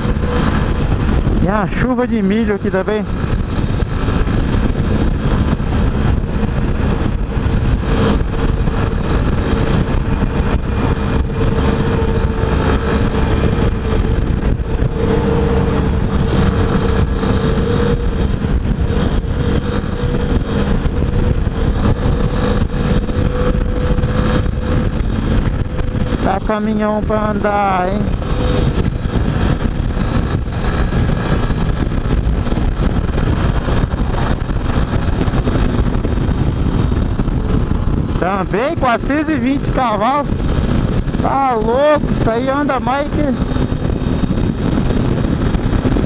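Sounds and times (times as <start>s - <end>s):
motorcycle engine cruising: 0.0s - 46.0s
wind rumble on microphone: 0.0s - 46.0s.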